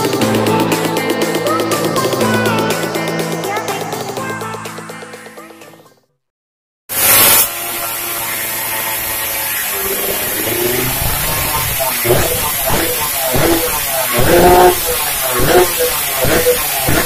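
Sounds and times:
two-stroke motorcycle engine revving: 0:07.0 - 0:17.0
intro music: 0:10.2 - 0:17.0.

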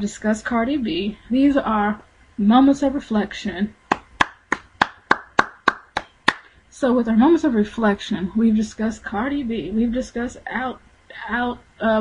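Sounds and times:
sharp hand claps: 0:03.9 - 0:06.5.

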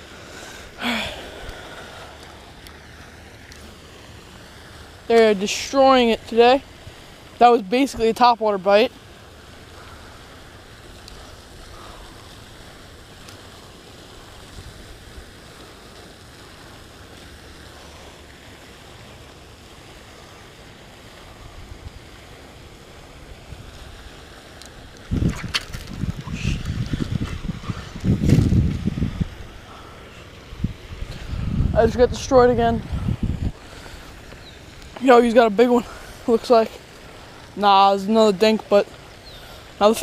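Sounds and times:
wind buffeting microphone: 0:24.8 - 0:36.5.

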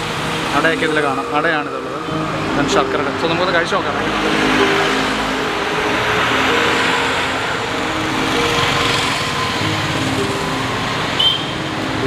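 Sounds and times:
vehicle engines passing: 0:00.0 - 0:12.0.

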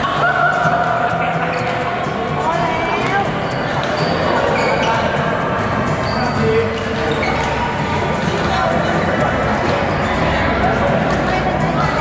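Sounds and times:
babble of voices: 0:00.0 - 0:12.0
shoes squeaking on court floor: 0:03.3 - 0:08.5.

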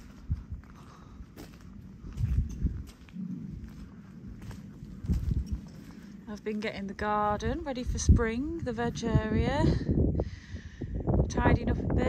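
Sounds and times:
footsteps on rough ground and grass: 0:00.0 - 0:07.7.

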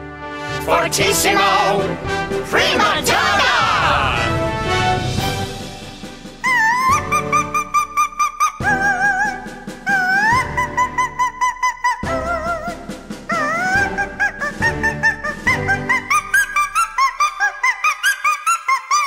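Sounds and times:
orchestral accompaniment: 0:00.0 - 0:07.6
operatic soprano singing: 0:00.6 - 0:04.4, 0:08.5 - 0:19.0.

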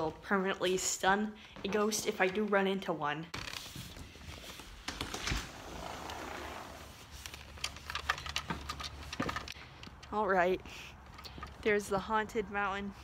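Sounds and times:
handling clicks and knocks: 0:07.2 - 0:10.4.

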